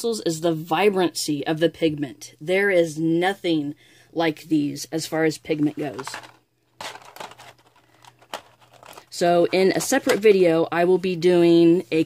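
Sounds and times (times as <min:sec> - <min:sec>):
pencils rustling in metal tin: 0:05.6 - 0:10.4.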